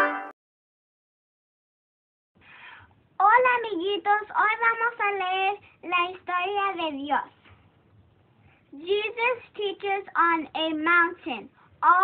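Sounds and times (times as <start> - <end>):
high-pitched sing-song voice: 0.0 - 0.3.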